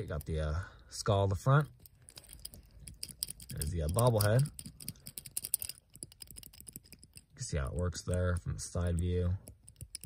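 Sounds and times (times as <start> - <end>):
toy car clicking and tapping: 1.8 - 10.0.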